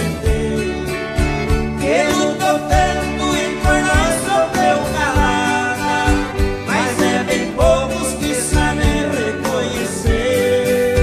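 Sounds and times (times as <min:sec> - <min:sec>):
country band playing: 0:00.0 - 0:11.0
person singing: 0:00.0 - 0:11.0.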